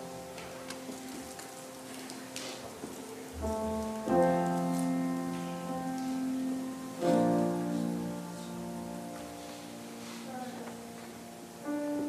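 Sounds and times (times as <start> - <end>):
faint crackly hiss: 0.0 - 12.0
soft keyboard chords: 0.0 - 12.0.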